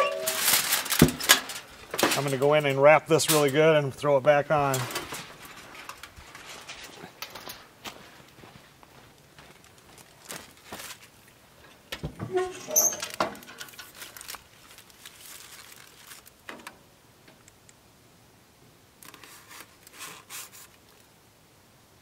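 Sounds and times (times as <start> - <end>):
metal lid clattering and squeaking: 0.0 - 0.6, 12.2 - 13.7.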